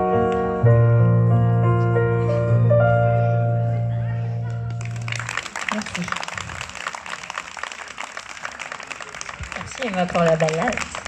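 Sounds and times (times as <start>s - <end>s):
audience applause: 4.7s - 11.0s.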